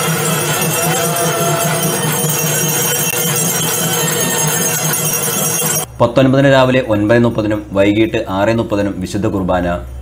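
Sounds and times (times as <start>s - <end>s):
bells ringing: 0.0s - 5.9s
festive music: 0.0s - 5.9s.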